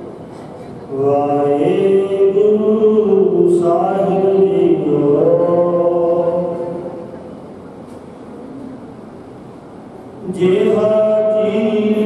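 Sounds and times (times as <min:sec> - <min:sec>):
low room noise: 0:00.0 - 0:12.0
man chanting into microphone: 0:00.9 - 0:07.2, 0:10.2 - 0:12.0.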